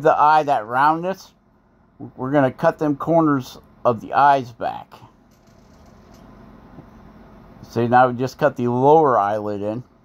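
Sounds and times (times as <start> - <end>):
faint background hum and hiss: 0.0 - 10.0.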